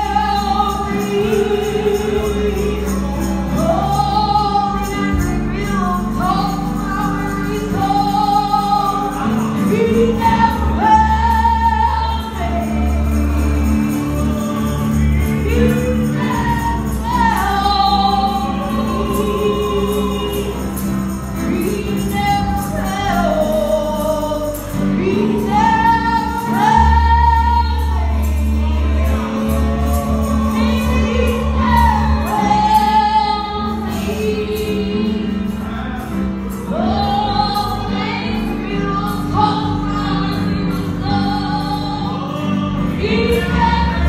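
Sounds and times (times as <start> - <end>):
bass and instrumental backing: 0.0 - 44.0
gospel group singing in harmony: 0.0 - 44.0
low musical accompaniment: 0.0 - 44.0.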